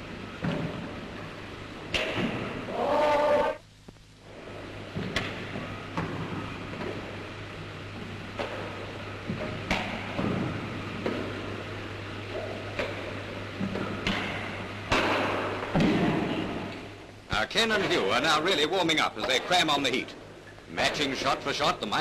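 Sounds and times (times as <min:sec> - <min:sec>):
rackets hitting shuttlecock: 0:01.9 - 0:02.4
loud noise: 0:02.7 - 0:03.6.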